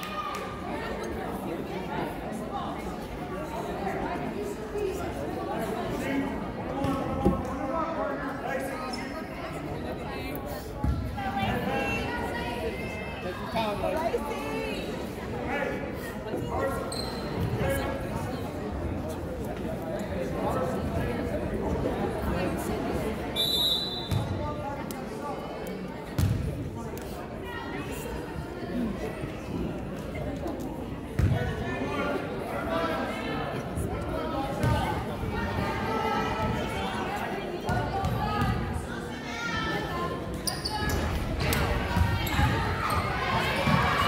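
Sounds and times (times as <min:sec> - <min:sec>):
echoing crowd chatter: 0:00.0 - 0:44.0
spectators' voices: 0:00.0 - 0:44.0.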